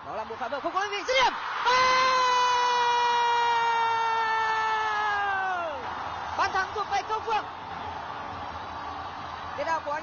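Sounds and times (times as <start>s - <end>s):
faint stadium crowd: 0.0s - 10.0s.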